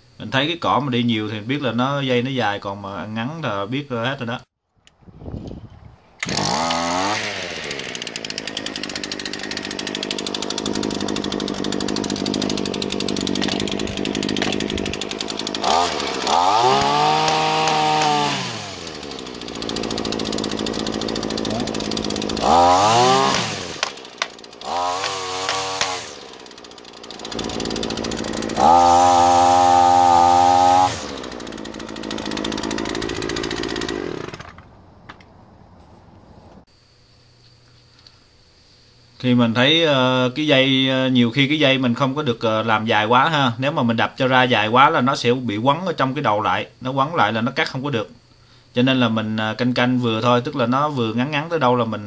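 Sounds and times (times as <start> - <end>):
string trimmer engine revving: 6.2 - 34.7.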